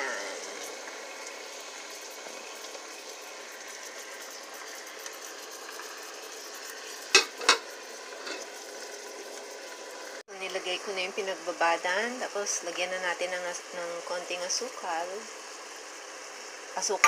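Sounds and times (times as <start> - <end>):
chicken sizzling in a pot: 0.0 - 17.0.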